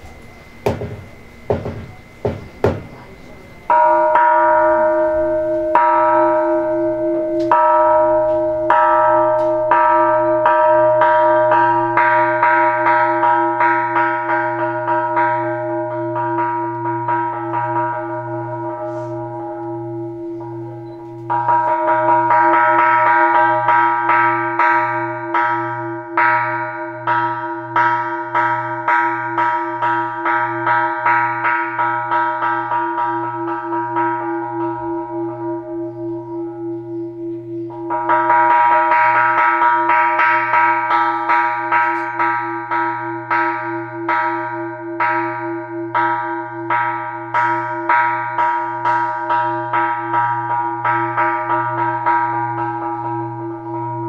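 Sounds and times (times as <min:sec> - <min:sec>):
small temple bell struck: 0:00.0 - 0:54.0.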